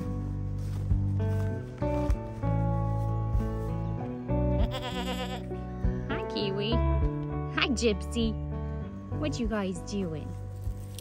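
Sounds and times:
background music: 0.0s - 11.0s
goat bleating: 4.6s - 5.5s.

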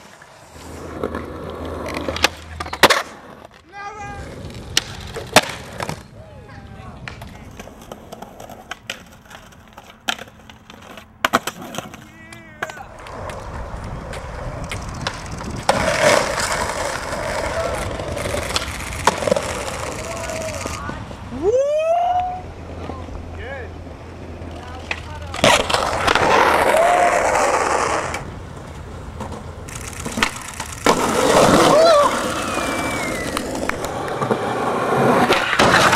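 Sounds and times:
skateboard wheels clacking on pavement: 0.0s - 21.2s, 22.7s - 35.9s.

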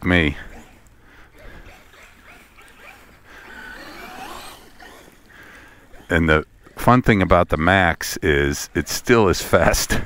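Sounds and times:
rc truck motor whine: 0.4s - 6.8s.

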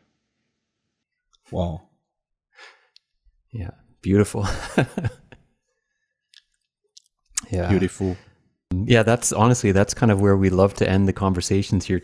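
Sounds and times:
breathy exhale: 2.6s - 2.9s.

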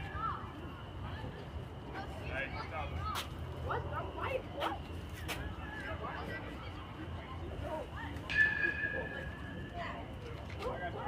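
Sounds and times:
spectator chatter: 0.0s - 11.0s.

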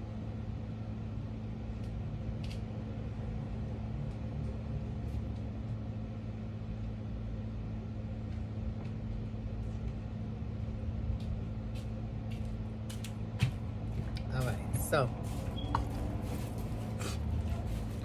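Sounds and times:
low mechanical hum: 0.0s - 18.0s.

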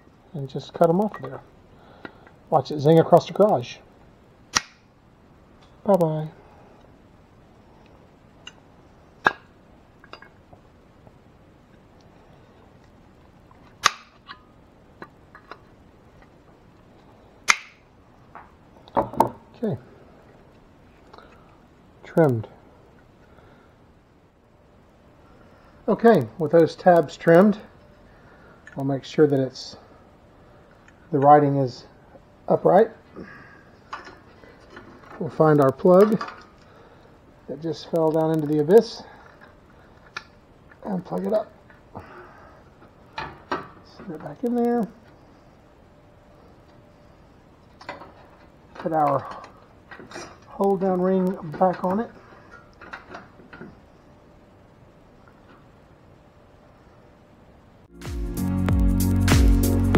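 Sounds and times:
side cutters metallic snap: 4.5s - 4.8s, 13.8s - 14.2s, 17.5s - 17.8s.

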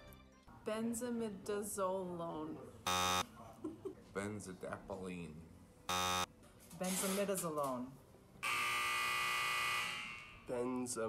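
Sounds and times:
electronic buzzer: 2.9s - 3.2s, 5.9s - 6.3s, 8.4s - 10.5s.

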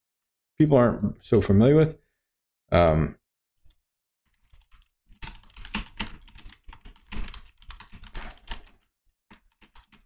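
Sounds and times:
computer keyboard typing: 4.3s - 10.0s.

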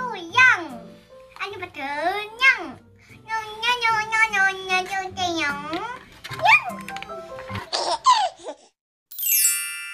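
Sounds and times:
background music: 0.0s - 8.1s
young girl laughing: 7.6s - 8.7s.

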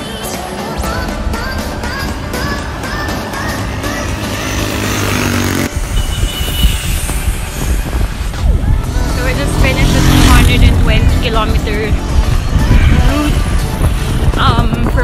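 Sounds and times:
background music: 0.0s - 6.0s, 7.1s - 15.0s
wind rumble on microphone: 5.7s - 15.0s
woman speaking: 9.2s - 12.0s.

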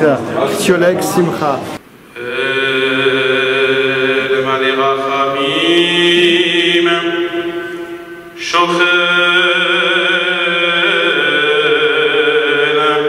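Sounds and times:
man chanting in long notes: 2.1s - 13.0s.

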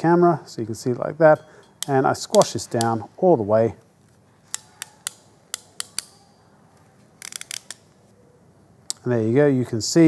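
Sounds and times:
ratchet crimping tool clicking: 1.7s - 3.0s, 4.5s - 6.2s, 7.2s - 7.8s.

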